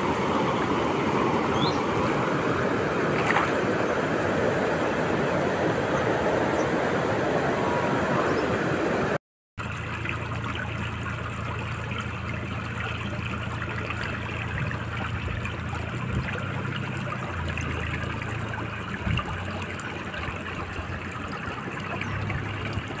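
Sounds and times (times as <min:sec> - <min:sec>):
floodwater flowing: 0:00.0 - 0:23.0
low uneven rumble: 0:09.6 - 0:23.0.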